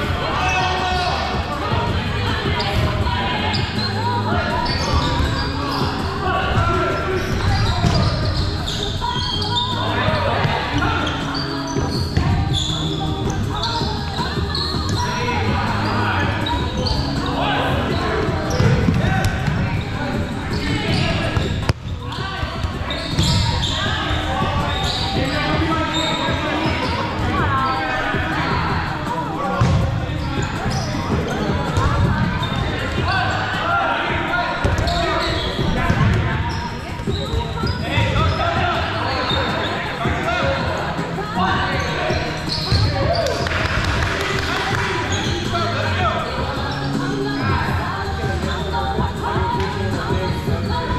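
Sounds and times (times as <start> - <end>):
balls thudding: 20.9 - 23.6.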